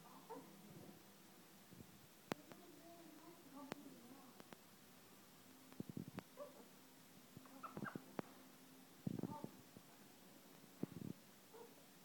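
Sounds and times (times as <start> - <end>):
cockatoo chirping: 7.5 - 8.1.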